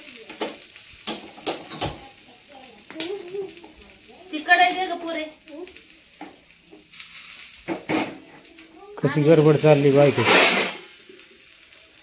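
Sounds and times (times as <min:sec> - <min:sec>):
curry sizzling in a frying pan: 0:00.0 - 0:12.0
utensil scraping a pan: 0:09.4 - 0:11.0.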